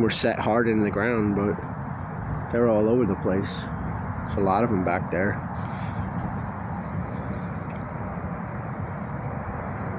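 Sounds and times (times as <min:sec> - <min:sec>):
distant highway traffic rumble: 0:00.0 - 0:09.9.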